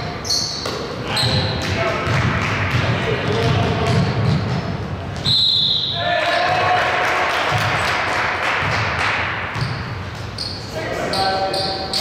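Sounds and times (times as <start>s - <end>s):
players' voices echoing: 0.0s - 12.0s
basketball bouncing: 0.6s - 5.2s, 7.5s - 7.9s, 8.6s - 10.3s.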